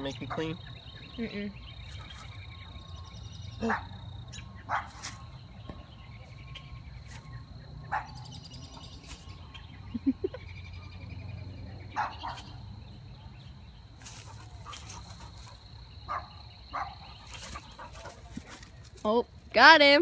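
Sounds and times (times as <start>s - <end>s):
faint chirping: 0.0s - 19.7s.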